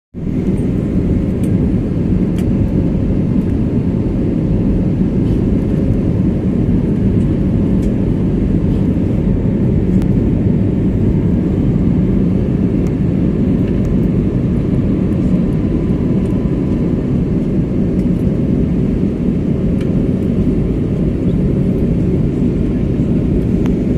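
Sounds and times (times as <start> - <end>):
aircraft engine rumble: 0.2 - 23.9.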